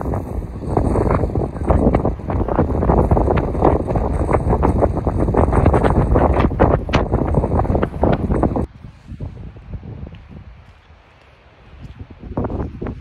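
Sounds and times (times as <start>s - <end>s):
strong wind buffeting microphone: 0.0s - 13.0s.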